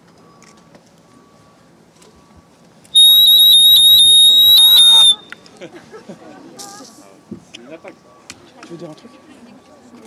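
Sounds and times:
loud high-pitched squeal: 3.0 - 5.2.

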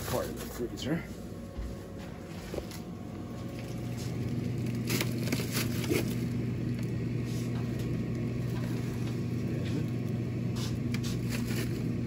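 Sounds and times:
refrigerator hum: 0.0 - 12.0
plastic bags crinkling: 3.4 - 6.9.

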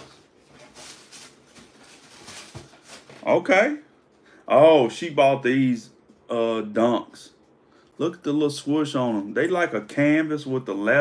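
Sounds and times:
faint cardboard rustling: 0.0 - 3.5.

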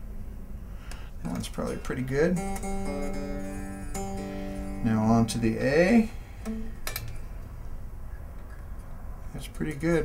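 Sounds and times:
low background hum: 0.0 - 10.0
electric guitar string plucked: 1.2 - 7.3.

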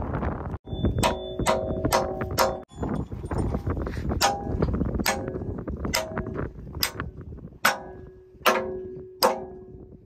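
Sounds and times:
low rumbling noise: 0.0 - 10.0
hammer striking steel pin: 0.9 - 2.7, 4.2 - 9.8.

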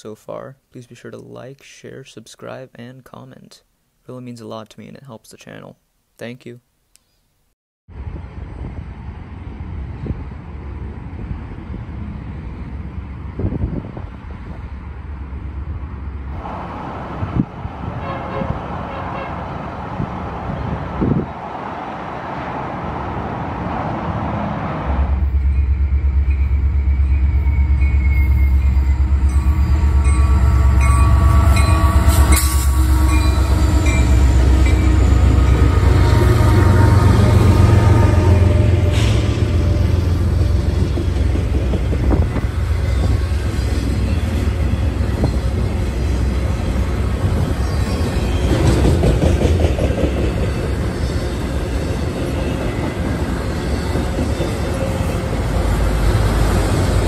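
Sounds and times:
diesel locomotive rumble: 7.9 - 57.0
train cars rolling: 8.6 - 57.0
wind on microphone: 9.6 - 14.8, 17.0 - 19.0, 19.8 - 21.6, 40.8 - 43.5
train wheel clacks: 48.4 - 55.4.

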